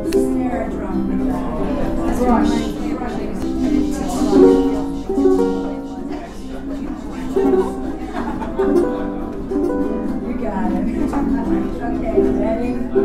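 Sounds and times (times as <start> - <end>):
people talking: 0.0 - 13.0
ukuleles strummed and plucked: 0.0 - 13.0.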